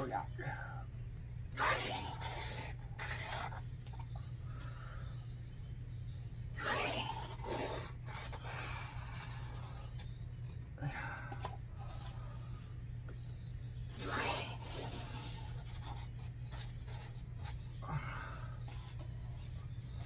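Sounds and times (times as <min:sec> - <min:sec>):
steady low hum: 0:00.0 - 0:20.0
paper cups rubbing and scraping: 0:01.4 - 0:05.6, 0:06.3 - 0:20.0.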